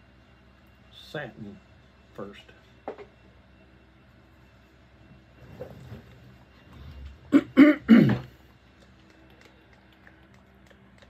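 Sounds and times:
man clearing his throat: 0:07.3 - 0:08.4.

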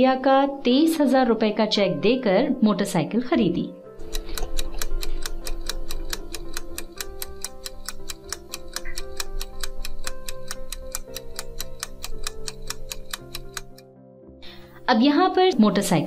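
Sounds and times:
soft background music: 0:00.0 - 0:16.0
clock-like ticking: 0:04.0 - 0:13.8.

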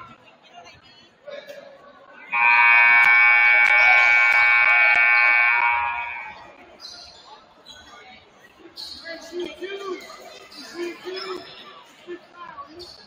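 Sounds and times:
scoreboard horn blast: 0:02.4 - 0:06.4.

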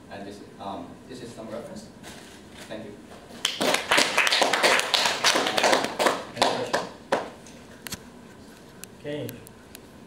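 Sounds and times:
small audience applause: 0:03.4 - 0:07.4.

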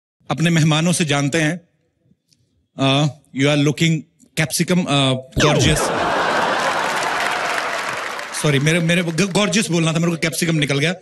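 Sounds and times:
crowd applause: 0:05.5 - 0:10.0.

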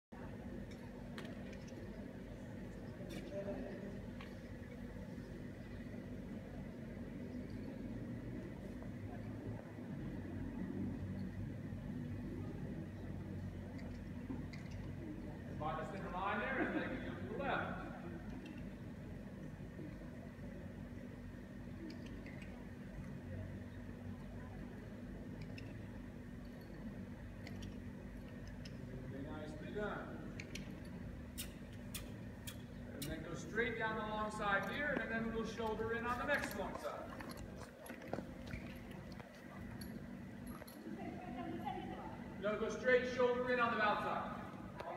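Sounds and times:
low room hum: 0:00.1 - 0:44.9.

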